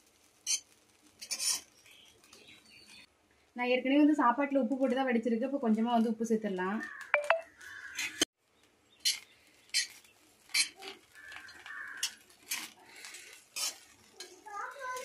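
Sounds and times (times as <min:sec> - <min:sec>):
metal ladle scraping wok: 0:01.2 - 0:01.7, 0:09.8 - 0:14.4.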